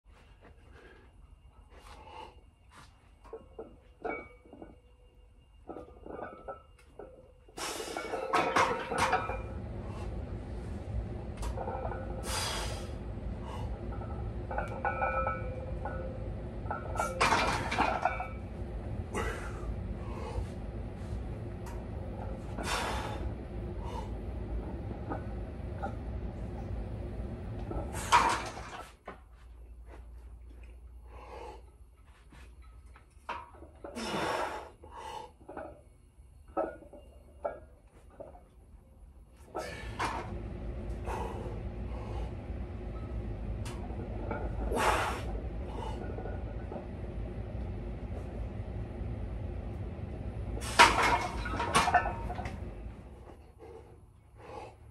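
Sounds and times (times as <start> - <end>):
steady low hum: 0.1 - 54.9
forceful breaths and exhales: 7.5 - 14.5, 16.8 - 29.0, 31.0 - 32.5, 33.9 - 35.5, 39.4 - 46.9, 50.4 - 54.9
forceful breaths: 22.3 - 24.4, 40.8 - 42.6, 53.0 - 54.9.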